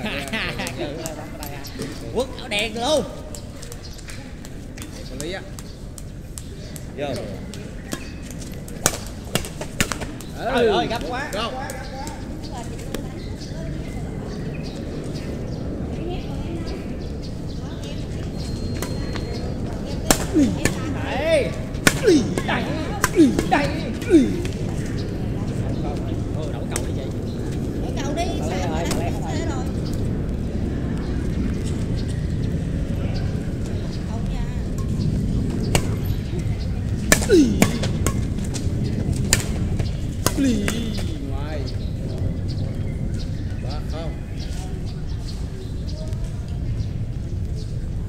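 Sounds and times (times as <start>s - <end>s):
players calling: 0.0s - 13.0s, 18.2s - 30.6s, 35.1s - 42.2s
rackets hitting shuttlecock: 7.2s - 10.4s, 20.0s - 21.0s, 21.6s - 24.6s, 35.6s - 36.3s, 37.0s - 41.0s.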